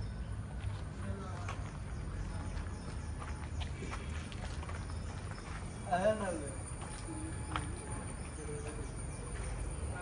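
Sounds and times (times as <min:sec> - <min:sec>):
footsteps: 0:00.5 - 0:09.6.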